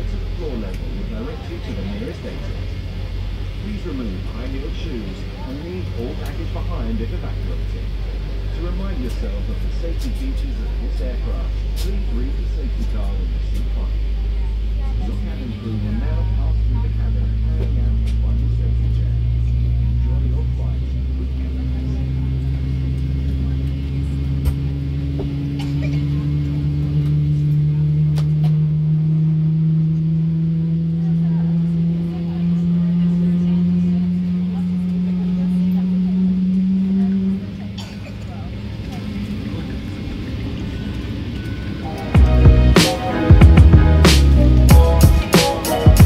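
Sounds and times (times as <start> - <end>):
music: 41.8 - 46.0.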